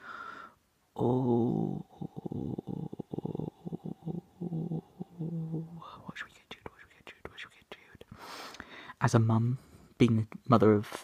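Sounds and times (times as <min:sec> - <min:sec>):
breathy hiss: 0:00.0 - 0:07.2, 0:08.0 - 0:09.0
man making choppy vocal sounds: 0:01.0 - 0:06.9.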